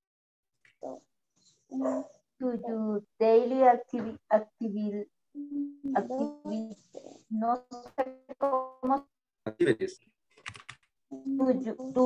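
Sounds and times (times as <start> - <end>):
person speaking: 5.4 - 12.0
computer keyboard key clicks: 10.4 - 10.9.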